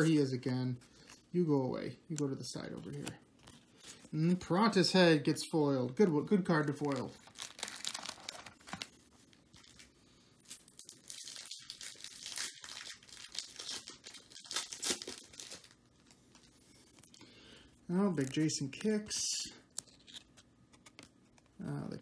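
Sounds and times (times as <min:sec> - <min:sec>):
wrapper tearing and crinkling: 0:06.6 - 0:16.5.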